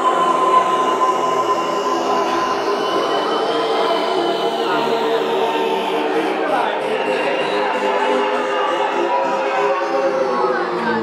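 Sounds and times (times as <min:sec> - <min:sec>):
sustained synth drones: 0:00.0 - 0:11.0.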